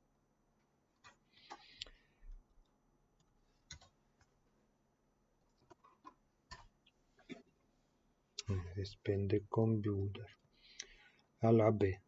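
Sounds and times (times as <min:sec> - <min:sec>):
computer mouse clicks: 0:03.2 - 0:04.3.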